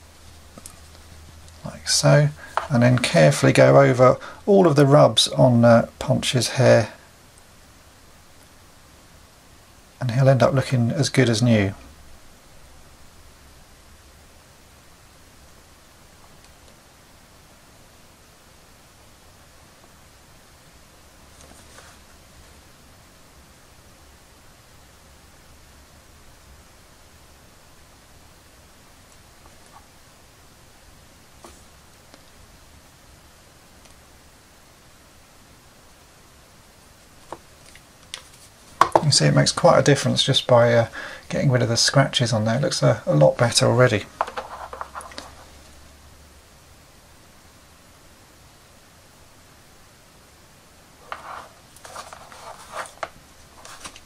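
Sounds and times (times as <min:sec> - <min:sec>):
faint steady hiss: 0:00.0 - 0:54.0
paintbrush scratchy rustles: 0:21.3 - 0:22.6, 0:44.3 - 0:45.7, 0:51.0 - 0:54.0.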